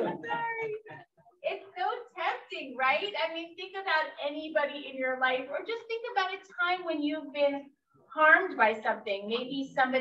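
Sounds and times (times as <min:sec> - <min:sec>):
woman speaking: 0:00.0 - 0:10.0.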